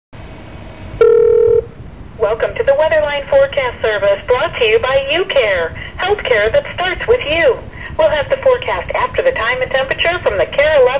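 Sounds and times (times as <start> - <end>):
telephone line hiss: 0.2 - 1.8
loud steady beep: 0.9 - 1.8.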